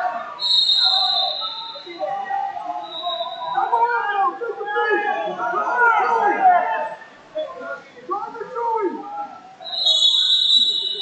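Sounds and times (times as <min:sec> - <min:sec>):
people calling out: 0:00.0 - 0:11.0.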